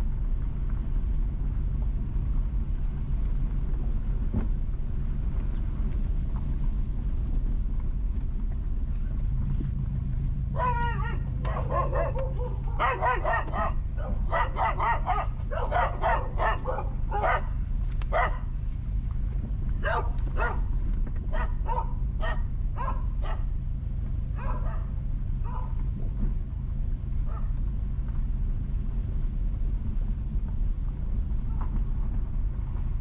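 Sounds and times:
car driving rumble: 0:00.0 - 0:33.0
dog barking: 0:10.6 - 0:18.5, 0:19.8 - 0:20.7, 0:21.3 - 0:23.5, 0:24.4 - 0:25.8, 0:27.2 - 0:27.6.

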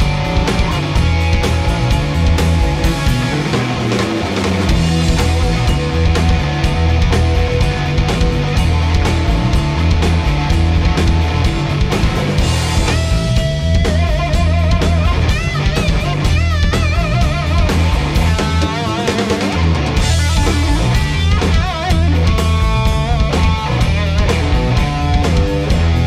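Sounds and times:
bass: 0:00.0 - 0:26.0
drums: 0:00.0 - 0:26.0
electric guitar lead: 0:00.0 - 0:26.0.

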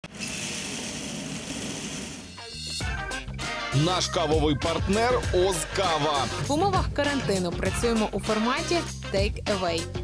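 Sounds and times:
coffee roaster mechanical hum: 0:00.1 - 0:02.2.

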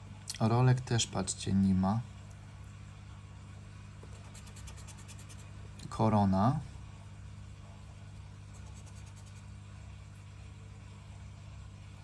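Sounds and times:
steady low hum: 0:00.0 - 0:12.0
scraper rubbing scratch card: 0:04.0 - 0:05.5, 0:08.5 - 0:09.5.

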